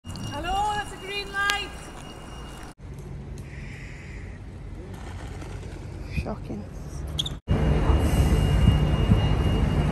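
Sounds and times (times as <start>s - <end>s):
street traffic hum: 0.0s - 9.9s.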